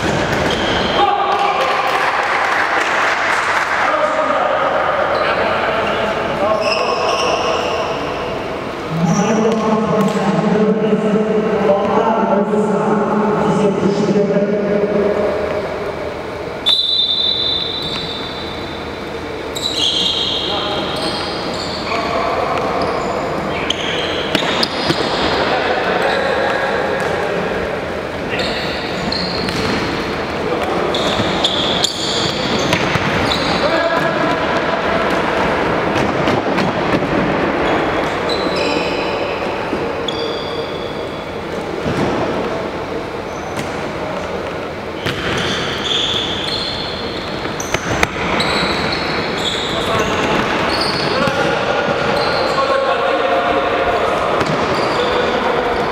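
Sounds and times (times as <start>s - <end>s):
shoes squeaking on wooden floor: 45.0s - 51.4s.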